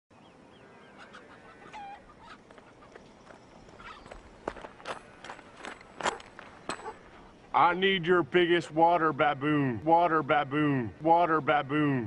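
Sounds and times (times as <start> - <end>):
birds chirping: 0.1 - 12.0
loud bird call: 0.3 - 4.3.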